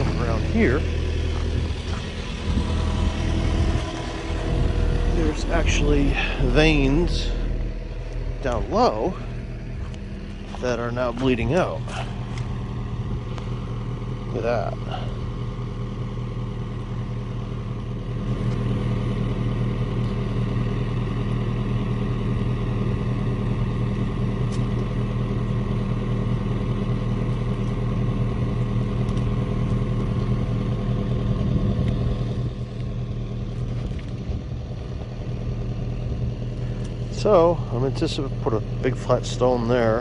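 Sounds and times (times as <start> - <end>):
excavator engine running: 0.0 - 40.0.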